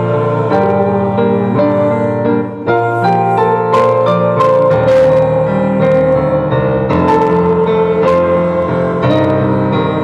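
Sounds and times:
women singing a hymn: 0.0 - 4.0, 5.4 - 10.0
electric piano: 0.0 - 10.0.

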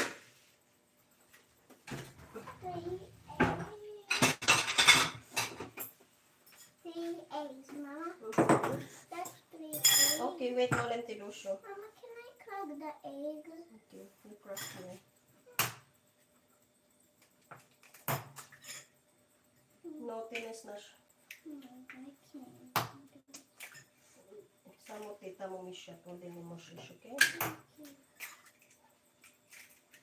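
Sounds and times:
kitchenware clattering: 1.9 - 6.8, 8.3 - 11.1, 14.4 - 15.0, 27.2 - 30.0
ringing clink of bowl: 9.8 - 10.2.

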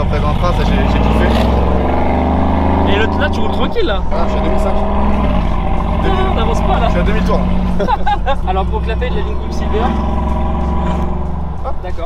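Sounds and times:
engine drone in cabin: 0.0 - 12.0.

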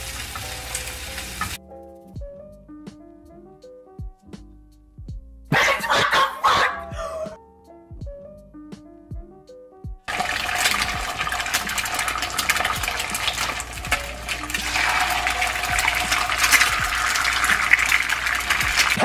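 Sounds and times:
eggs sizzling in a pan: 0.0 - 1.6, 10.1 - 19.0
music: 0.0 - 19.0.

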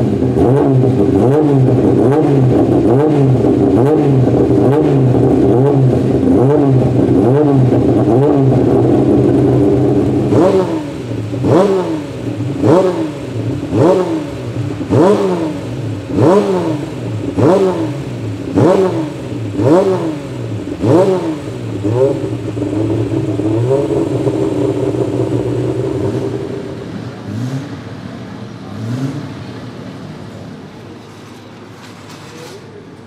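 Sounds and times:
race car engine revving: 0.0 - 32.8.

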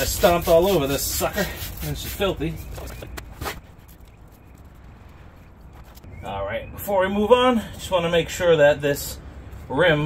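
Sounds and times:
cloth rag scrubbing wheel rim: 0.0 - 3.7.

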